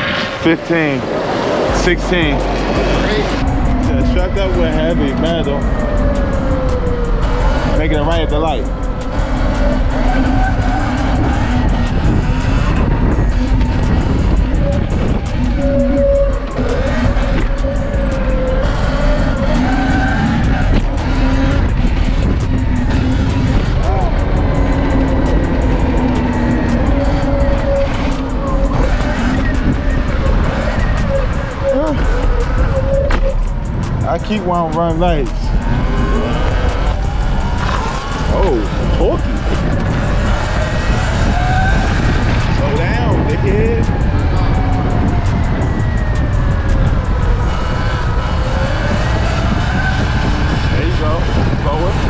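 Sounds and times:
wind rushing over microphone: 0.0 - 52.0.

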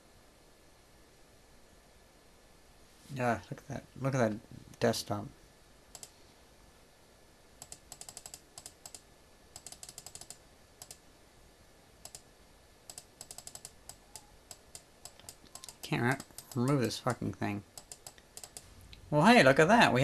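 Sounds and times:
laptop keys clicking: 5.9 - 6.1, 7.6 - 9.0, 9.6 - 11.0, 12.0 - 12.3, 12.9 - 17.2, 17.8 - 18.7.

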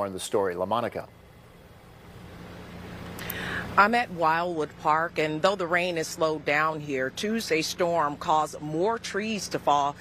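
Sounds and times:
faint hum: 0.0 - 10.0
low steady rumble: 0.0 - 10.0.

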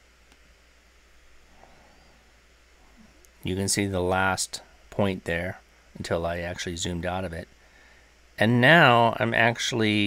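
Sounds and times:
faint steady hiss: 0.0 - 10.0
low hum: 0.0 - 10.0.

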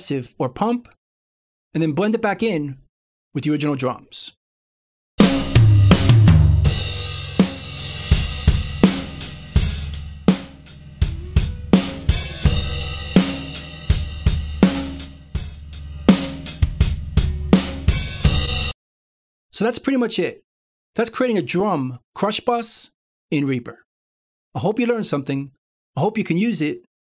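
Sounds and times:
acoustic drum kit playing: 5.2 - 18.8.

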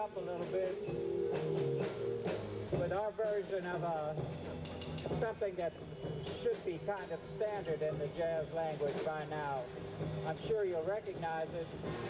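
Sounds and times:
band music with guitar and bass: 0.0 - 12.0.

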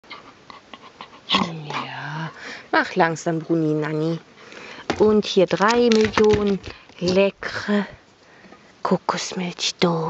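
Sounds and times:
dog moaning: 0.0 - 2.3.

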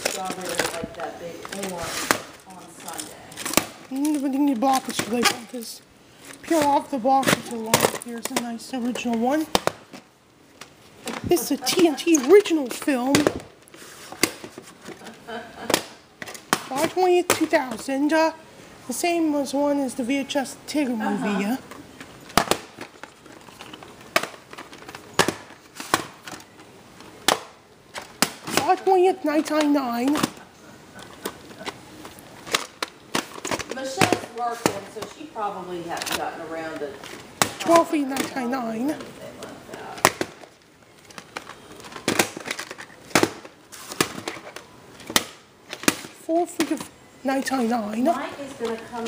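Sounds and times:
plastic cassette cases clacking: 0.0 - 5.5, 6.3 - 10.0, 21.6 - 30.4, 31.0 - 35.2, 40.0 - 49.0.

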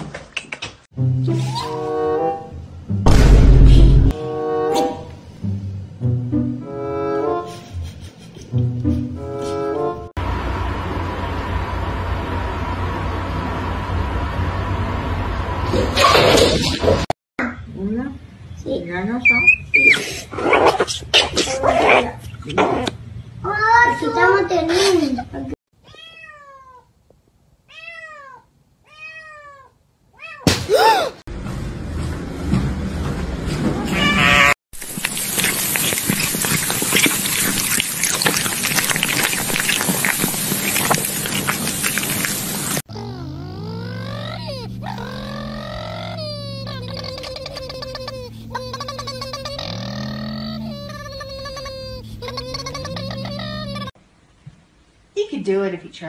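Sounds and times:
cat meowing: 25.8 - 26.9, 27.7 - 30.5, 33.8 - 34.6
meat sizzling on a grill: 34.8 - 42.8.

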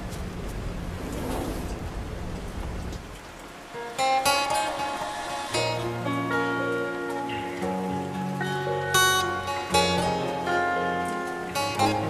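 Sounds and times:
rain: 0.0 - 12.0
plucked guitar note: 4.0 - 12.0.

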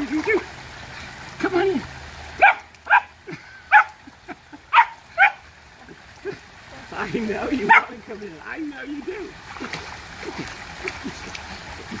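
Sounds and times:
puppy yipping: 2.4 - 3.1, 4.7 - 5.4, 7.7 - 7.9.

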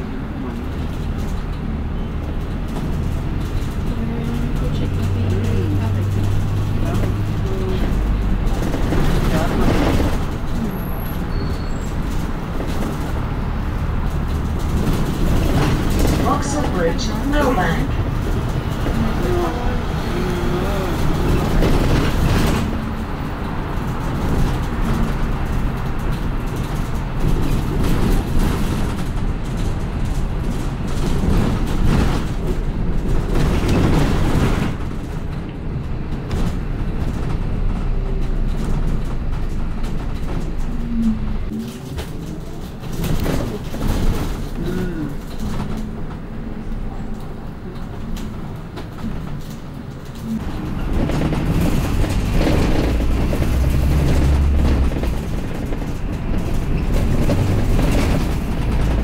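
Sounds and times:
bus engine and road rumble: 0.0 - 59.0.

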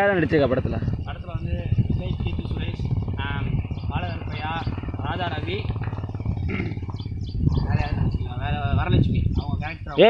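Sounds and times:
steady low rumble: 0.1 - 10.0.

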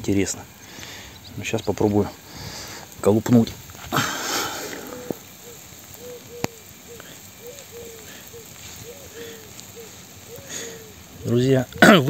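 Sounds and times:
hose spray hiss: 0.0 - 12.0.

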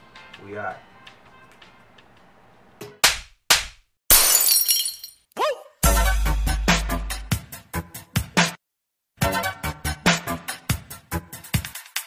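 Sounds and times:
glassy shattering crash: 4.1 - 5.2.

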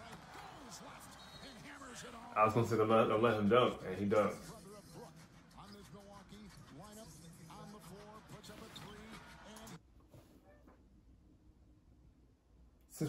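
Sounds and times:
male sports commentary: 0.0 - 4.6
arena crowd noise: 0.0 - 9.8.

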